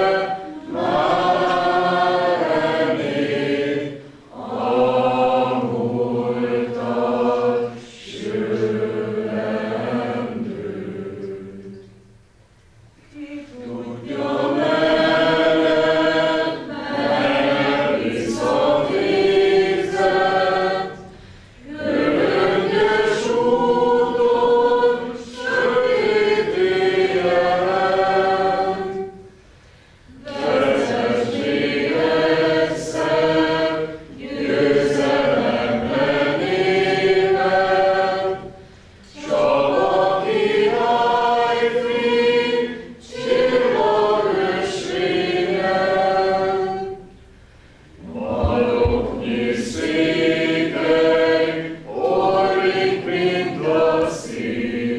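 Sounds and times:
crowd singing a hymn: 0.0s - 12.1s, 13.1s - 54.9s.

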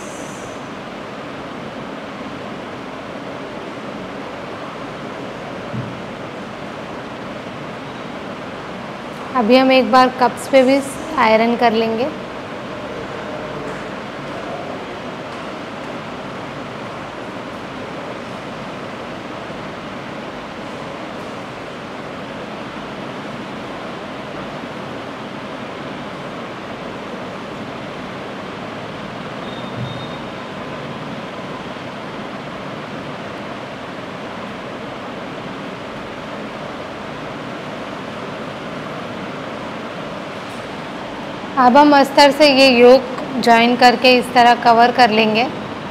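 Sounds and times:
steady hiss: 0.0s - 9.7s.

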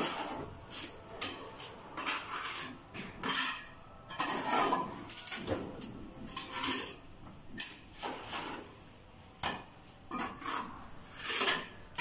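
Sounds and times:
trowel scraping mortar: 2.0s - 5.5s, 6.3s - 7.0s, 10.2s - 12.0s.

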